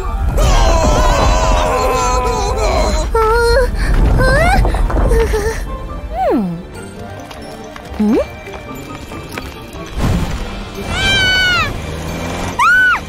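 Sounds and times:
cartoon background music: 0.0s - 13.0s.

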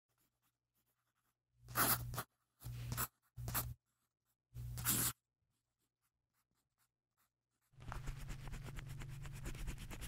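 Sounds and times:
pen scribbling on paper: 0.1s - 10.0s.

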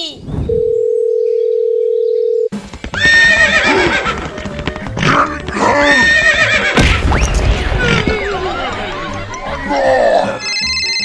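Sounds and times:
telephone tone: 0.5s - 2.5s, 10.4s - 11.0s
background music: 2.5s - 11.0s
horse whinnying: 3.0s - 6.9s.

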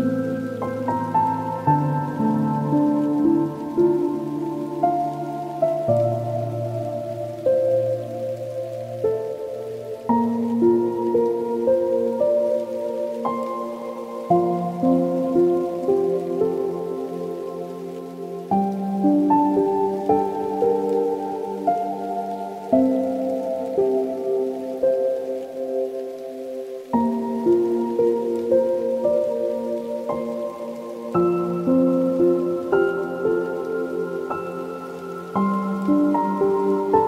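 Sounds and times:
slow solo piano chords: 0.0s - 37.0s.

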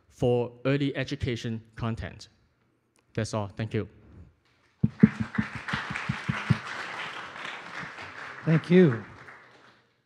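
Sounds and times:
audience applauding: 4.8s - 10.0s.

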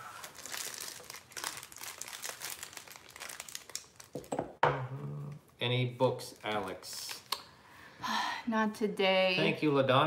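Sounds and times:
wrapping material crinkling: 0.0s - 4.3s.

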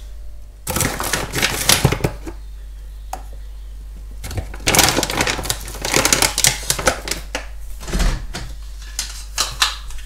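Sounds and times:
plastic pouch crinkling: 0.7s - 2.3s, 4.3s - 7.3s.

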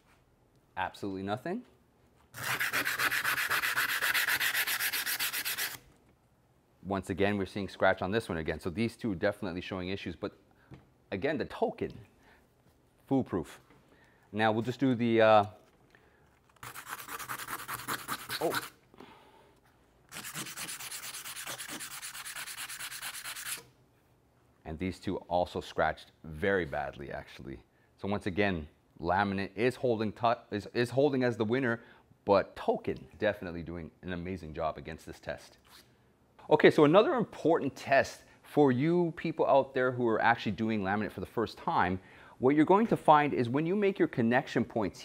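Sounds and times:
sandpaper rubbing on laminate: 2.3s - 5.8s, 16.6s - 18.8s, 20.1s - 23.6s.

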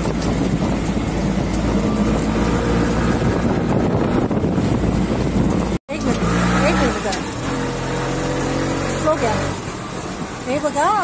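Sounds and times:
vehicle engine humming: 0.0s - 11.0s.

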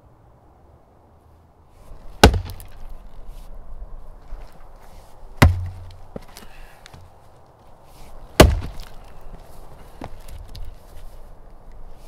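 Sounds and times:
axe striking wood: 2.2s - 2.9s, 5.4s - 6.1s, 8.4s - 9.0s.

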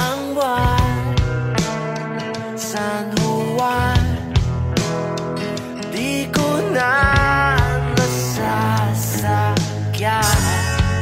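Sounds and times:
rock band song: 0.0s - 11.0s.

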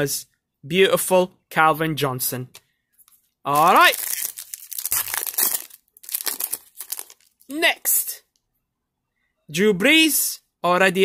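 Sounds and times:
foil wrapper crinkling and tearing: 3.5s - 7.6s.

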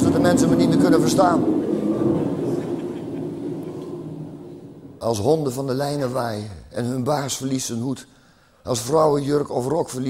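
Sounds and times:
wind: 0.0s - 6.2s
thunder rumbling: 0.0s - 7.2s.

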